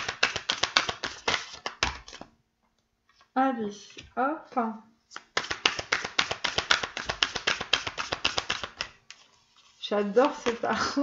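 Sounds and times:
cards being shuffled: 0.0s - 2.3s, 5.1s - 10.7s.

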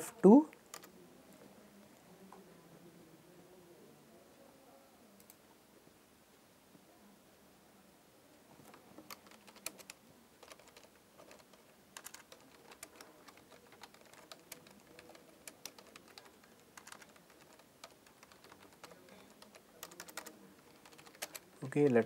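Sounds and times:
typing on keyboard: 0.7s - 0.9s, 8.7s - 22.0s.

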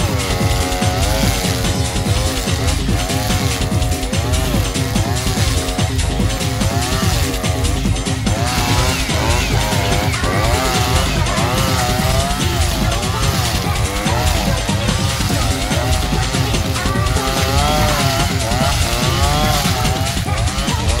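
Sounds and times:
brushcutter cutting grass: 0.0s - 21.0s.

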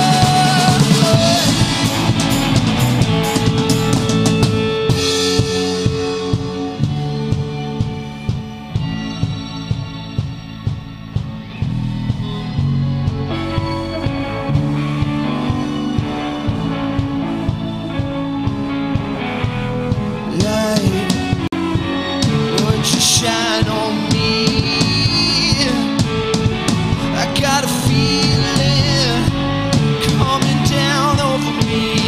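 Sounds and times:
rock band playing live: 0.0s - 32.0s.

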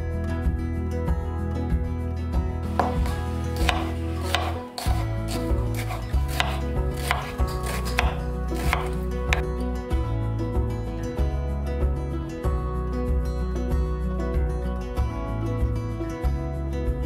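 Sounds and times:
soft background music: 0.0s - 17.0s
knife chopping on wooden board: 2.6s - 9.4s.

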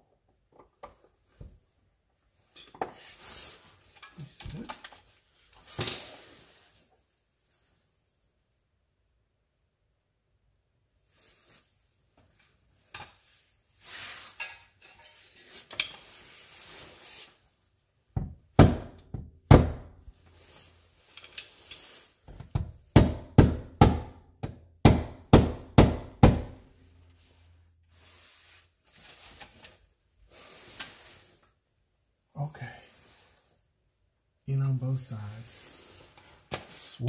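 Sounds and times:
handling and scraping: 2.3s - 7.0s, 11.1s - 17.8s, 20.1s - 22.5s, 26.6s - 31.8s, 35.2s - 37.0s.

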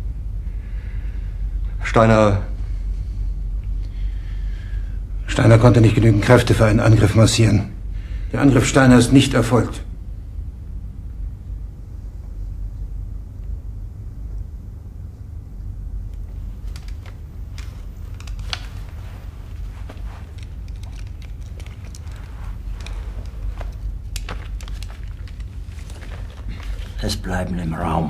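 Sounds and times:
low room rumble: 0.0s - 28.0s
small clicks and rustles: 16.1s - 27.2s.

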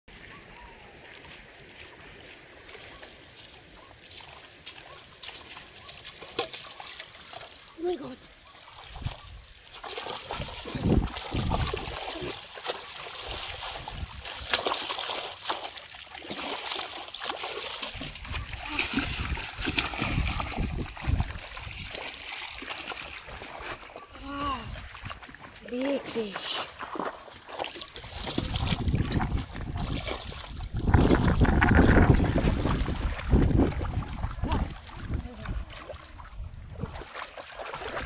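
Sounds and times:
shallow water splashing: 0.1s - 38.0s.

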